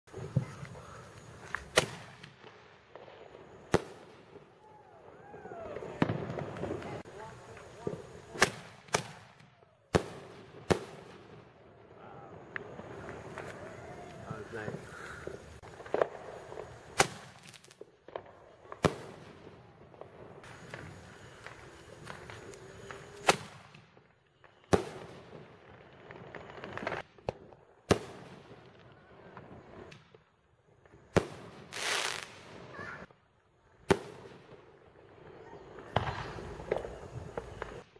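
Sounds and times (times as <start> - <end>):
faint firework pops: 0.1 - 4.4, 5.2 - 11.4, 12.5 - 25.4, 26.0 - 30.2, 35.8 - 37.9.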